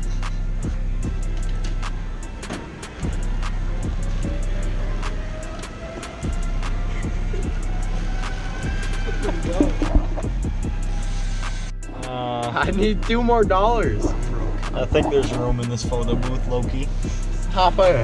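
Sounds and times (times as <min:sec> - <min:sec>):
deep bass: 0:00.0 - 0:02.4, 0:03.0 - 0:05.5, 0:06.2 - 0:18.0
hip-hop beat: 0:00.0 - 0:18.0
hi-hat ticks: 0:05.0 - 0:18.0.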